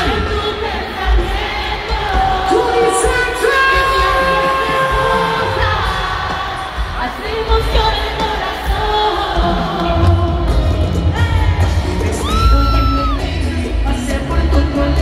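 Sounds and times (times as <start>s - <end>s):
live latin band over loudspeakers: 0.0s - 15.0s.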